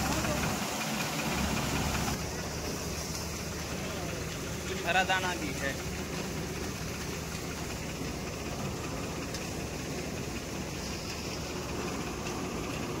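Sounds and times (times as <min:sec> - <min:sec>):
combine harvester droning: 0:00.0 - 0:13.0.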